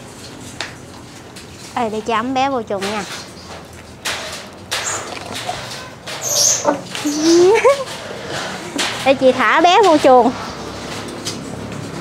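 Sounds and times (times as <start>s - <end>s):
wire-mesh cage rattling: 2.8s - 10.1s.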